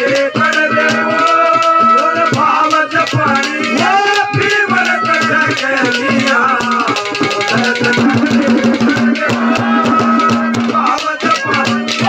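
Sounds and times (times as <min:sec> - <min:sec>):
fast hand-drum strokes: 0:00.0 - 0:12.0
jingling rattle percussion: 0:00.0 - 0:12.0
held drone note: 0:07.5 - 0:10.7
melody line: 0:08.0 - 0:10.2.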